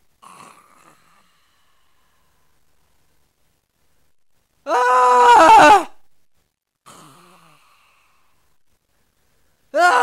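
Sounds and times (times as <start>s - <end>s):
person screaming: 4.6s - 6.0s, 9.7s - 10.0s.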